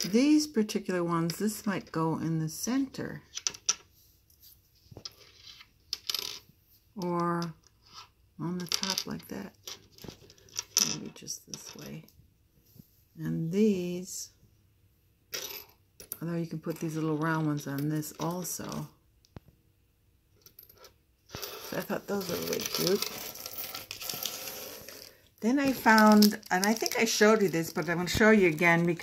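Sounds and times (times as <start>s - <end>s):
metal charms clinking: 21.5s - 28.8s.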